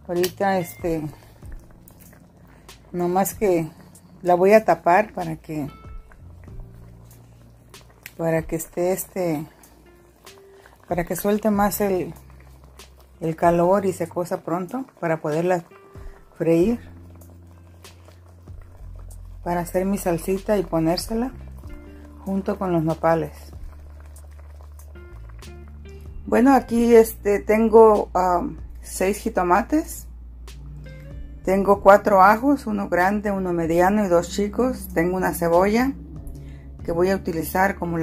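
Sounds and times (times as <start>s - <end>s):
soft handling of meat in pot: 0.0s - 26.0s
steady low hum: 28.6s - 38.0s.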